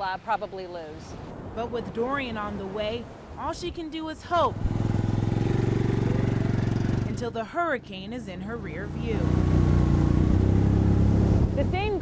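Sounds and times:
quad engine driving on sand: 4.4 - 12.0.

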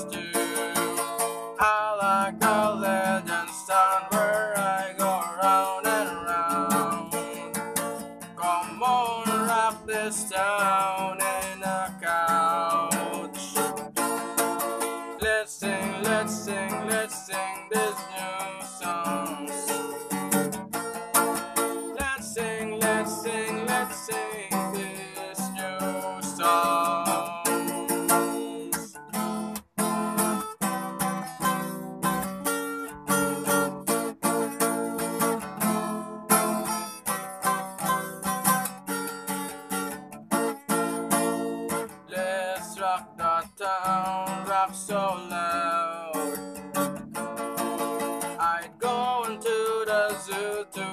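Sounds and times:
acoustic guitar strumming: 0.0 - 50.9.

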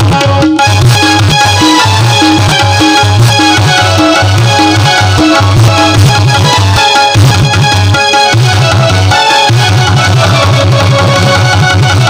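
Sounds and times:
keyboard and tabla devotional music: 0.0 - 12.0.

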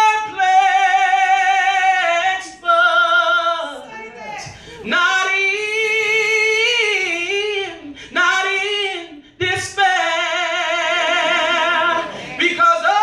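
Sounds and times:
man singing unaccompanied gospel: 0.0 - 3.9, 4.7 - 13.0.

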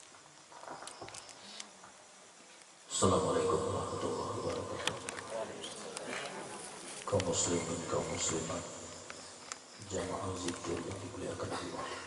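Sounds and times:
high-pitched whine: 2.9 - 5.8
man's voice over sound system: 2.9 - 5.8, 7.1 - 8.9, 9.8 - 12.0.

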